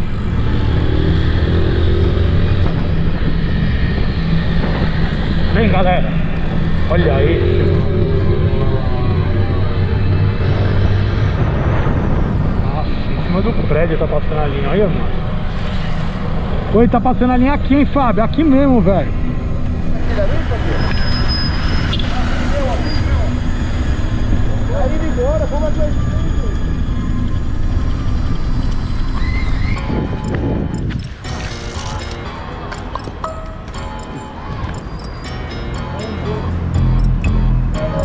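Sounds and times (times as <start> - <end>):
street noise: 0.0 - 38.0
background music with voices: 31.3 - 38.0
percussive hits: 36.8 - 38.0.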